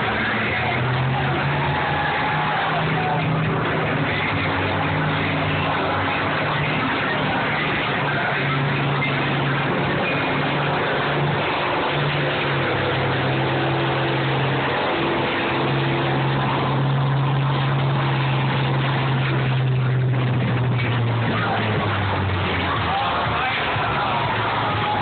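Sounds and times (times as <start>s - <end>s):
combine harvester engines droning: 0.0s - 25.0s.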